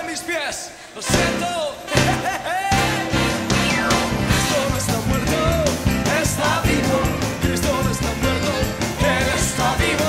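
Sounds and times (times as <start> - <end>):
lead voice singing: 0.9 - 10.0
band playing worship music: 1.0 - 10.0
drum hit: 2.8 - 7.6.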